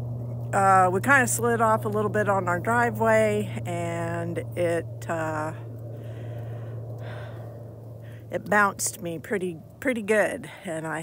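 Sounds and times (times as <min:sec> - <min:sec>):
distant aircraft engine drone: 0:00.0 - 0:11.0
soft breath: 0:05.9 - 0:08.3.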